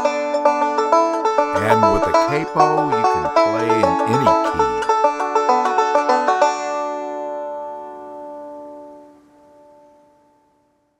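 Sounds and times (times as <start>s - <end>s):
banjo picking: 1.6s - 5.0s.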